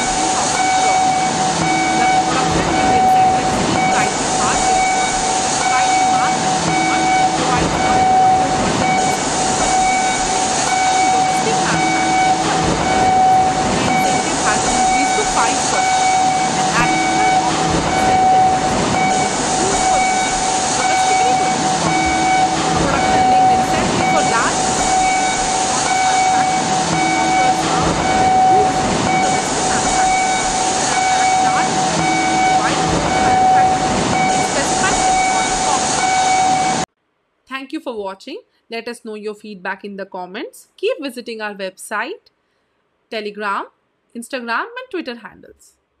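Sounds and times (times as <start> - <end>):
machine whine: 0.0 - 36.9
signal beeps: 0.0 - 36.9.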